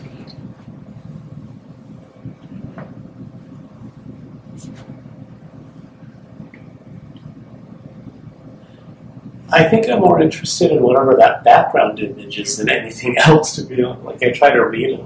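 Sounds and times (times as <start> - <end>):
faint constant tone: 0.0 - 15.0
steady low hum: 0.0 - 15.0.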